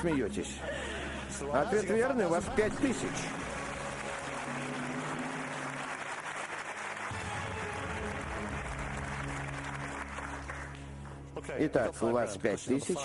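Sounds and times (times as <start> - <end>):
audience applauding: 2.4 - 11.3
quiz show music cue: 2.5 - 11.8.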